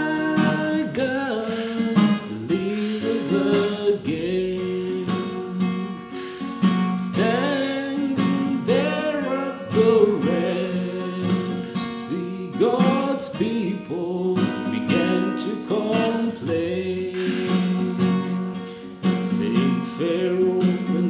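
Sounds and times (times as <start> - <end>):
man singing a hymn: 0.0 - 6.2, 6.9 - 18.4, 19.1 - 21.0
strummed acoustic guitar: 0.0 - 21.0.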